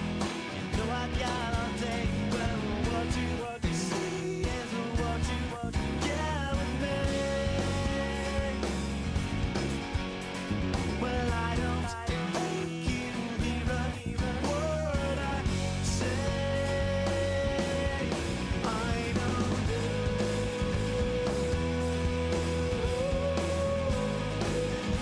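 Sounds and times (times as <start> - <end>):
bent guitar notes: 0.0 - 25.0
regular drum beat: 0.0 - 25.0
steady bass: 0.0 - 25.0.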